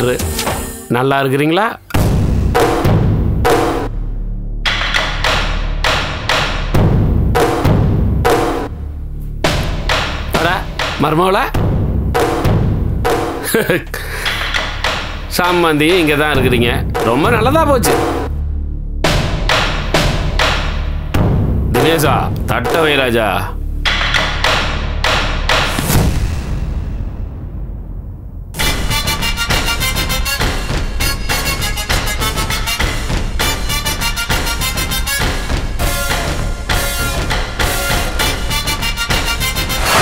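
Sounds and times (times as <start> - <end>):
low bass drone: 2.0 - 14.4, 15.1 - 28.8
loud percussive hits: 2.0 - 18.4, 19.0 - 23.2, 23.8 - 40.0.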